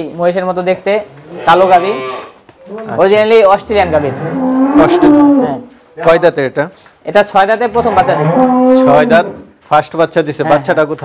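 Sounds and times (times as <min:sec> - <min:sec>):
cow mooing: 0:01.3 - 0:02.8, 0:03.7 - 0:05.7, 0:07.7 - 0:09.5
men talking: 0:02.6 - 0:11.0.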